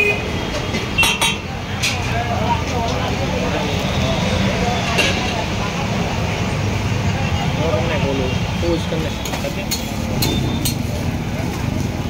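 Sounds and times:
passing traffic rumble: 0.0s - 12.0s.

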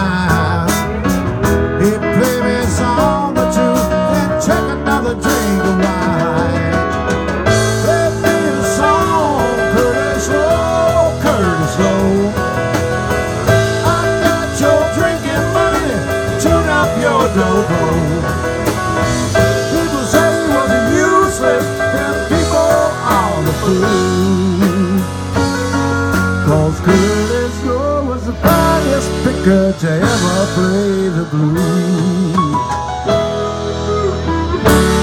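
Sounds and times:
bass: 0.0s - 35.0s
drums and cymbals: 0.0s - 35.0s
lead electric guitar: 0.0s - 35.0s.

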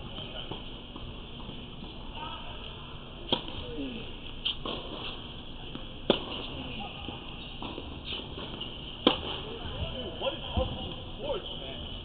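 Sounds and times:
tennis ball struck by racket: 3.3s - 3.6s, 6.0s - 6.6s, 7.6s - 9.4s.

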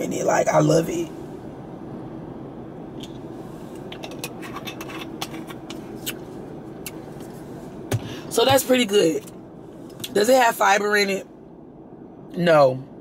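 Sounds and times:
low hum inside car cabin: 0.0s - 13.0s.

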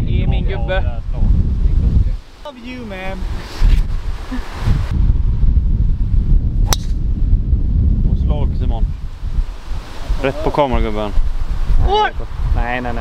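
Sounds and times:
wind buffeting microphone: 0.0s - 13.0s
golf club striking ball: 6.6s - 7.0s.

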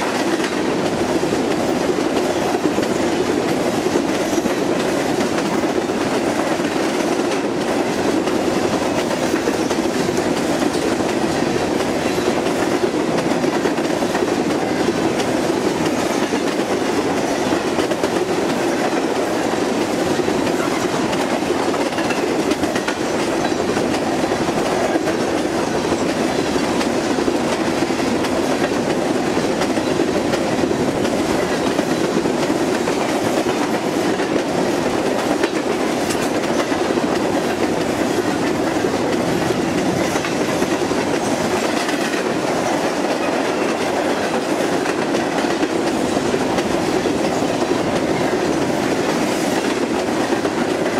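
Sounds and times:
freight train rumbling and rattling: 0.0s - 50.9s
wheels clicking over rail joints: 0.0s - 50.9s.

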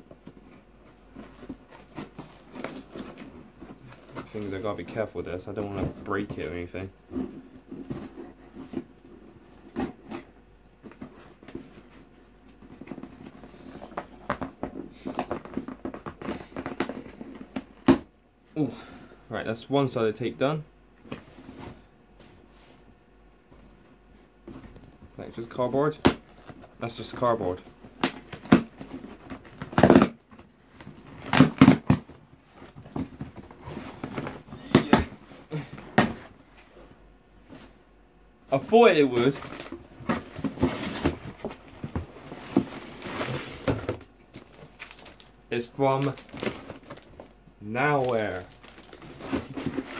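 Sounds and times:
cardboard rustling and scraping: 0.0s - 18.0s, 23.5s - 37.8s, 38.5s - 49.9s
packing tape tearing: 27.9s - 32.0s, 45.9s - 47.2s, 47.9s - 49.9s
cardboard box scraping and rustling: 39.2s - 44.0s, 48.3s - 49.9s.

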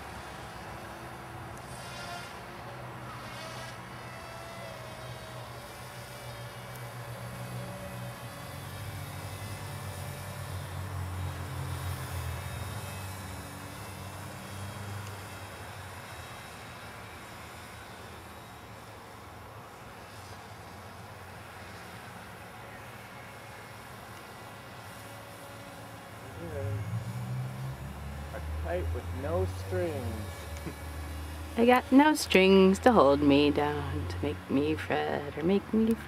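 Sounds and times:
propeller motors buzzing: 0.0s - 36.0s.

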